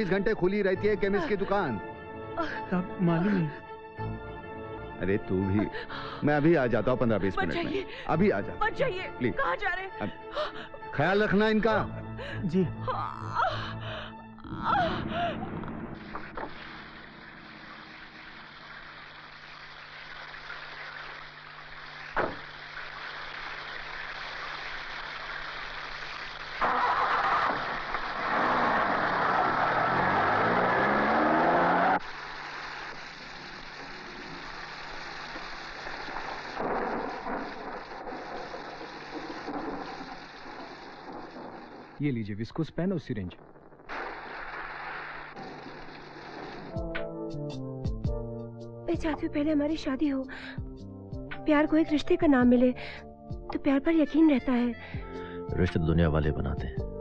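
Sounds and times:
heavy rain: 14.6 - 42.0, 43.9 - 46.9
sharp knock: 22.2 - 22.4
car engine pulling away: 26.4 - 33.2.

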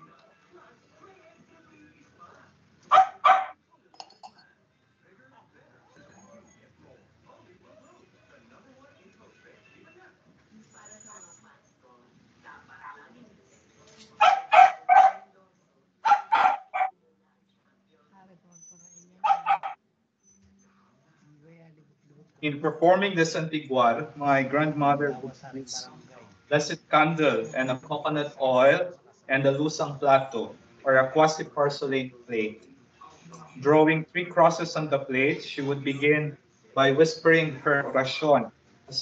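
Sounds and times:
dog barking: 2.9 - 3.6, 14.2 - 15.3, 16.0 - 16.9, 19.2 - 19.8.

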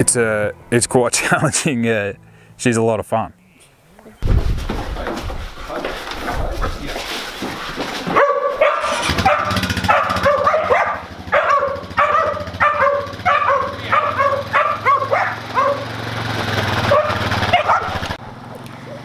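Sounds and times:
dogs barking and yipping: 7.5 - 18.2
quad bike engine running: 8.6 - 19.0.

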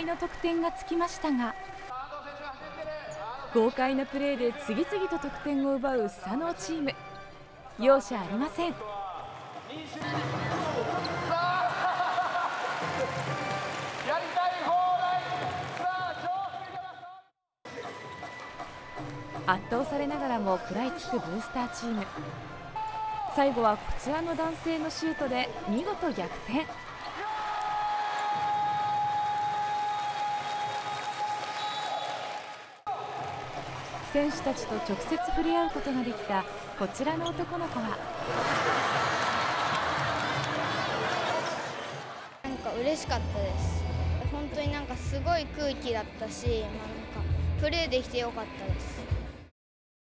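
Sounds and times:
crowd applauding and cheering: 10.6 - 16.6, 26.7 - 36.3, 38.0 - 42.5.

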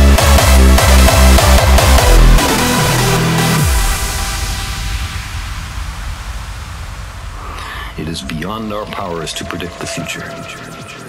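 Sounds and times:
low rumble: 0.7 - 11.0
synthesized white-noise hiss: 3.6 - 10.3.

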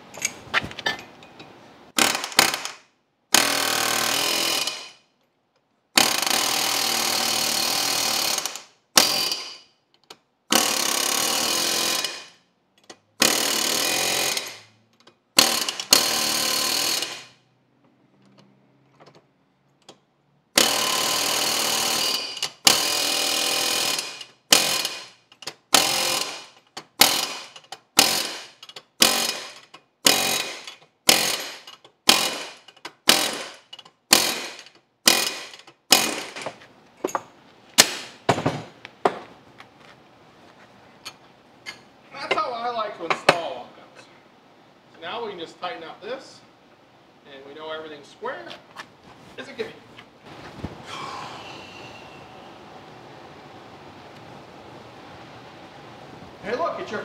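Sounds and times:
pneumatic impact wrench: 2.0 - 5.0, 6.0 - 9.7, 10.5 - 12.4, 13.2 - 14.7, 15.4 - 17.4, 20.5 - 36.5.

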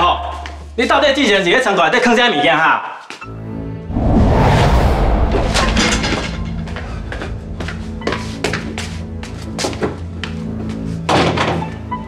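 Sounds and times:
background music: 6.6 - 12.0.

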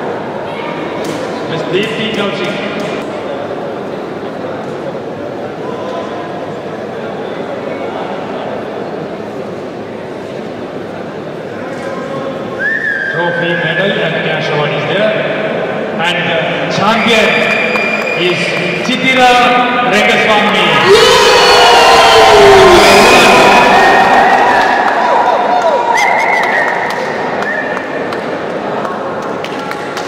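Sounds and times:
crowd chatter in a hall: 0.0 - 30.0
long high whistle: 12.6 - 13.2, 17.0 - 18.4, 25.9 - 27.8.

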